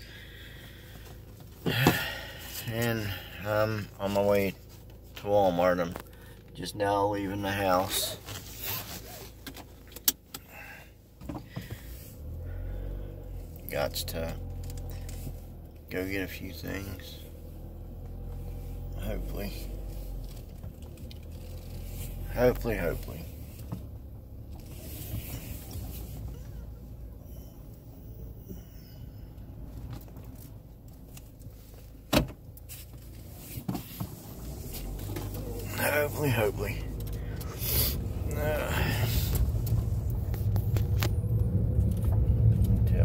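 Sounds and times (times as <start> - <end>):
car interior rumble while driving: 0.0 - 43.0
faint thin high tones: 27.1 - 29.5.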